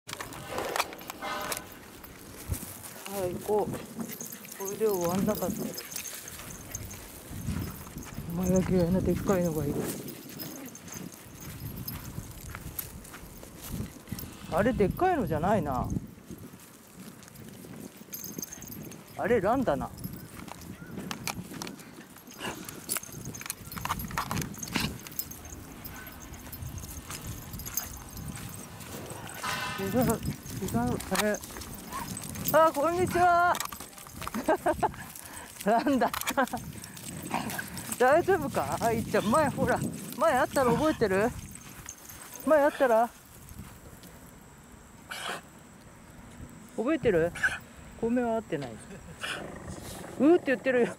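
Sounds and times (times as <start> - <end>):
footsteps on grass and dirt: 0.1 - 44.4.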